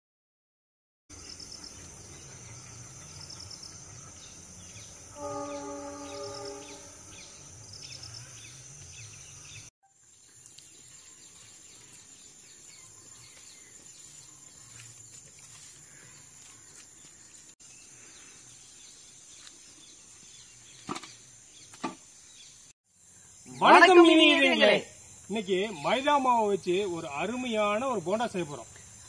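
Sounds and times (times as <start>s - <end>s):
high-pitched insect drone: 1.3s - 17.5s
steady pitched call or tone: 5.1s - 7.4s.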